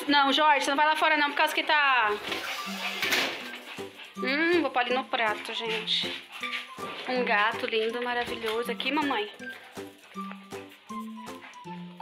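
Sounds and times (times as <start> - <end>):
hissing noise: 2.2 - 3.5
background music with bass notes: 2.2 - 12.0.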